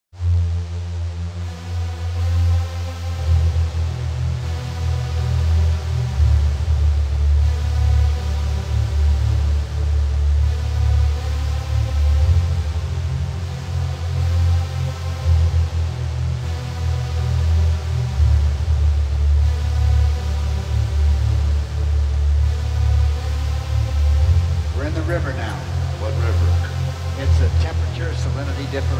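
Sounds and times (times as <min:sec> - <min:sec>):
held synthesizer chords: 0:00.1 - 0:28.9
steady electronic bass: 0:00.1 - 0:28.9.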